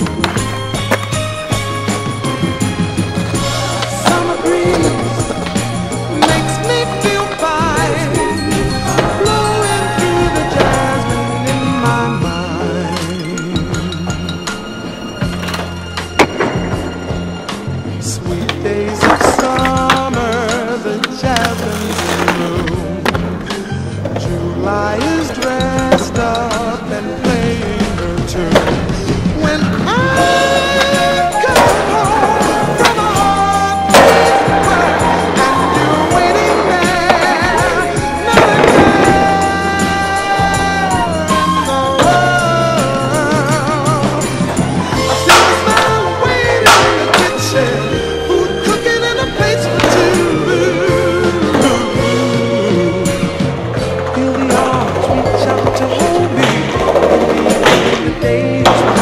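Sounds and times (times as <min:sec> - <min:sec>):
skateboard wheels rolling on concrete: 0:00.0 - 0:59.0
song playing: 0:00.0 - 0:59.0
skateboard clacking on ledge: 0:25.0 - 0:47.8, 0:53.8 - 0:59.0.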